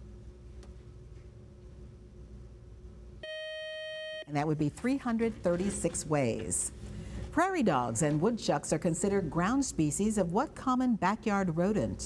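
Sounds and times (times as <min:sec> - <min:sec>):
faint room hum: 0:00.0 - 0:12.0
electronic buzzer tone: 0:03.2 - 0:04.4.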